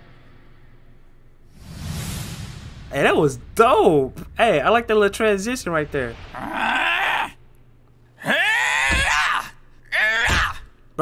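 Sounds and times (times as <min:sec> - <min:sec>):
cartoon character strained cries: 0:08.2 - 0:10.7.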